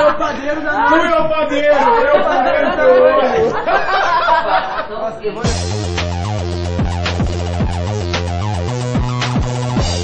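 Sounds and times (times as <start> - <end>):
voices chattering: 0.0 - 3.8.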